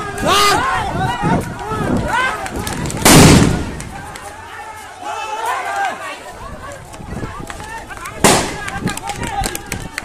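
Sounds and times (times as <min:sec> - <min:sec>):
voices shouting: 0:00.0 - 0:10.0
bomb blast: 0:03.0 - 0:03.7.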